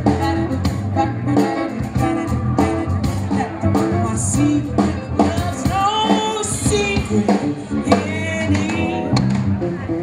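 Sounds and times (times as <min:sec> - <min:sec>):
woman singing: 0:00.0 - 0:09.3
drums: 0:00.0 - 0:10.0
electric guitar: 0:00.0 - 0:10.0
jazz band playing: 0:00.0 - 0:10.0.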